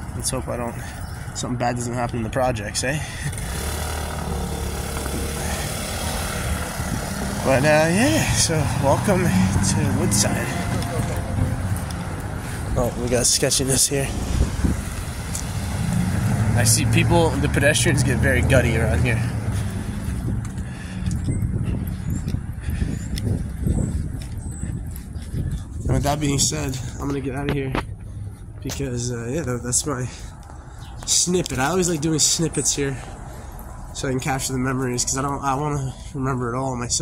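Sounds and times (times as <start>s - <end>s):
city traffic rumble: 0.0s - 37.0s.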